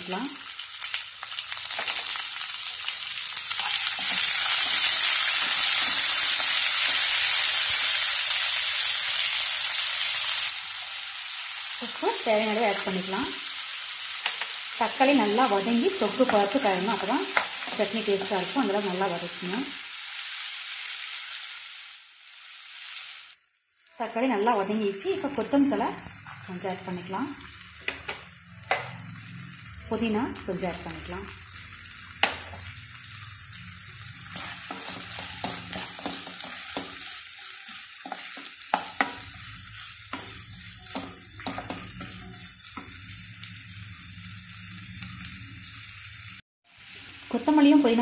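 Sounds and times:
tomatoes sizzling in oil: 0.0s - 48.0s.

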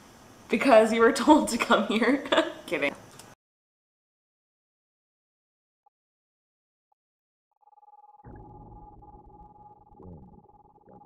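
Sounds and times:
steady high tone: 7.8s - 11.0s
deep rumble: 8.3s - 11.0s.

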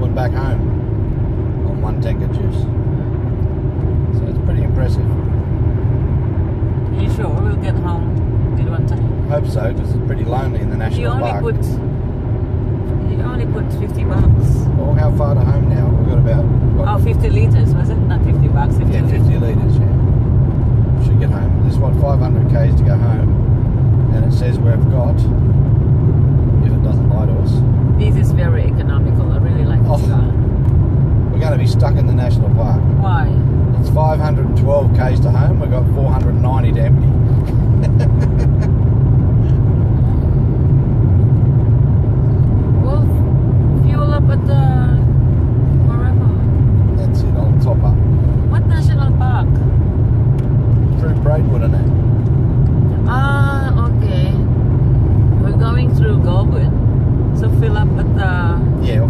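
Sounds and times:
people conversing: 0.0s - 59.0s
road and engine rumble: 0.0s - 59.0s.

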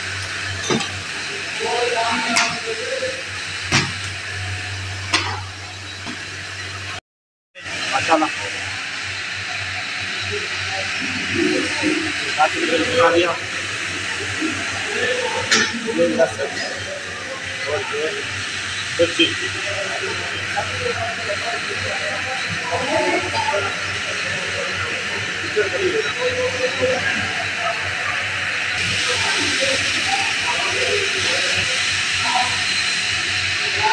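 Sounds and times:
hissing kitchen noise: 0.0s - 7.0s, 7.6s - 33.9s
faint voices or music: 7.6s - 33.9s.

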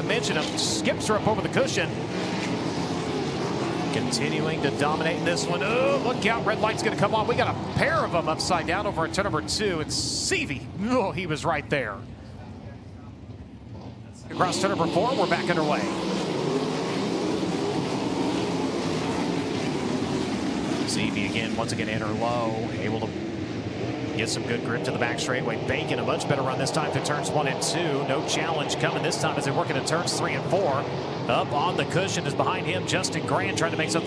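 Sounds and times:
racing car engines droning: 0.0s - 34.0s.

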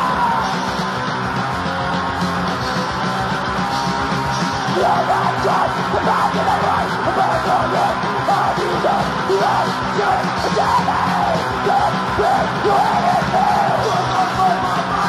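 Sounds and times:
harsh shouted vocals: 0.0s - 0.8s, 4.4s - 15.0s
crust punk music: 0.0s - 15.0s.

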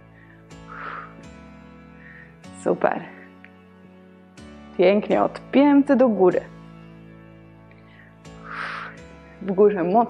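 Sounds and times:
sustained chord music: 0.0s - 10.0s.

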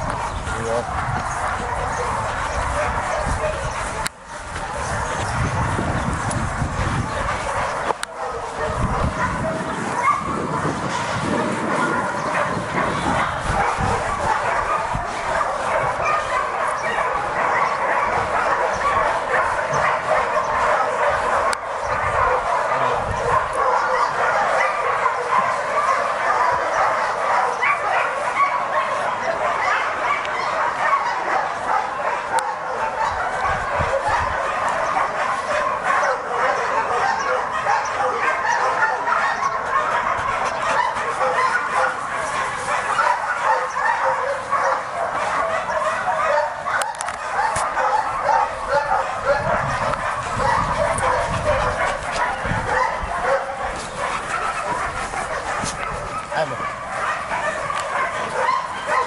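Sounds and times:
many dogs barking and yelping: 0.0s - 59.0s.

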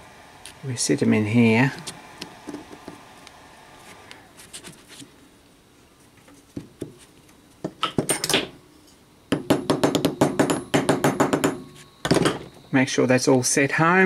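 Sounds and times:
small hammer tapping metal: 9.3s - 12.4s.

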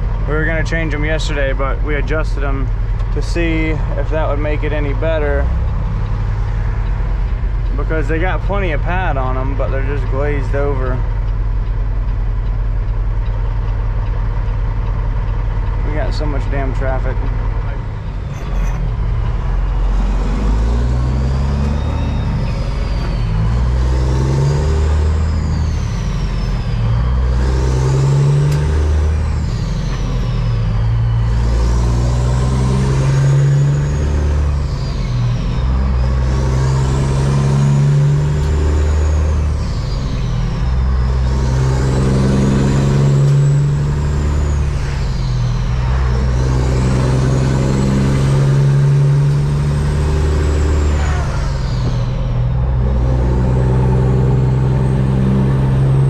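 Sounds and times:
truck diesel engine accelerating: 0.0s - 56.0s.

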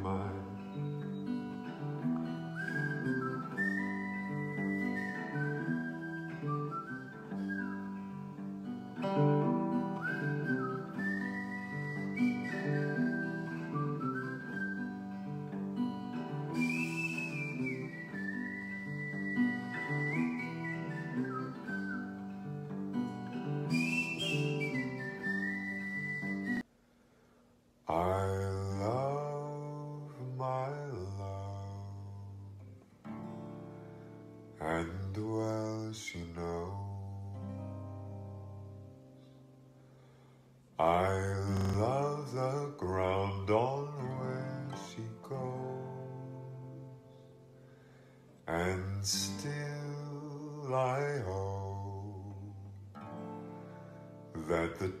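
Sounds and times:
man singing: 0.0s - 0.7s, 20.0s - 22.0s, 27.9s - 32.5s, 34.6s - 37.7s, 40.8s - 47.0s, 48.5s - 52.9s, 54.3s - 55.0s
acoustic guitar chords: 0.0s - 26.6s, 27.9s - 55.0s
whistled melody: 0.0s - 26.6s, 29.8s - 40.2s, 40.8s - 55.0s.

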